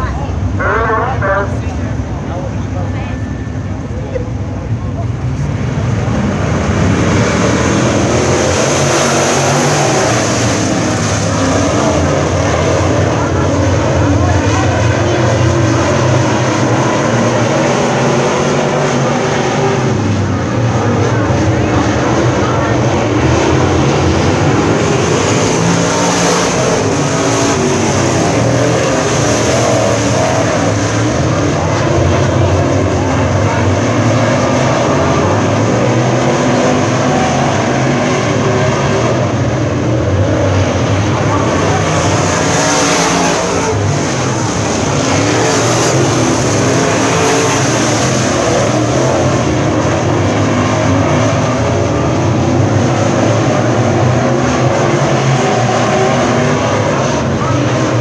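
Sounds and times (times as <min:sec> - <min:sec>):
race car engines passing: 0:00.0 - 0:58.0.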